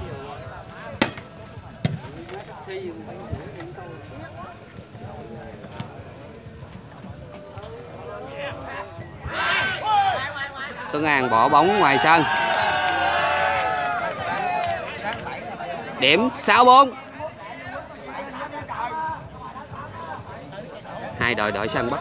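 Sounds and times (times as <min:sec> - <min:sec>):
chatter of onlookers: 0:00.0 - 0:22.0.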